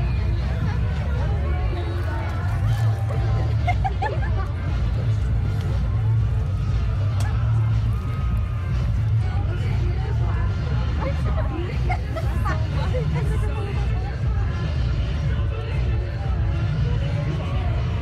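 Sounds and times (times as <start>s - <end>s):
crowd babble: 0.0s - 18.0s
steady low rumble: 0.0s - 18.0s.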